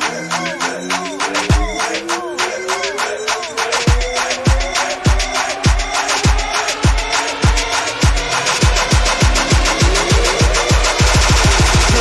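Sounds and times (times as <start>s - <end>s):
rising synth tone: 1.4s - 12.0s
deep bass kicks falling in pitch: 3.9s - 12.0s.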